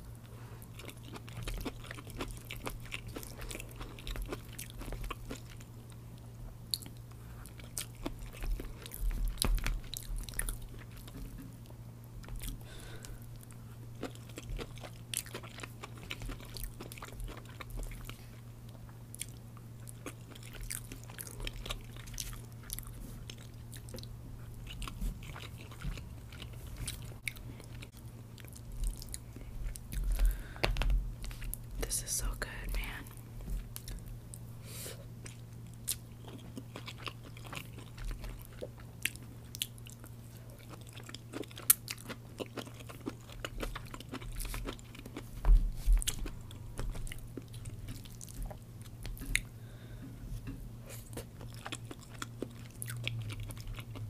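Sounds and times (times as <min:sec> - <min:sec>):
steady low hum: 0:00.0 - 0:54.0
chewing with wet mouth clicks: 0:00.7 - 0:31.6, 0:33.6 - 0:34.5, 0:35.2 - 0:49.5, 0:51.0 - 0:54.0.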